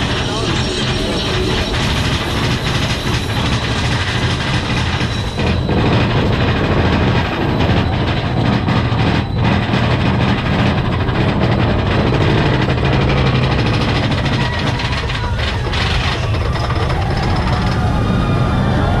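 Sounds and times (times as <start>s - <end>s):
roller coaster rumbling on track: 0.0s - 19.0s.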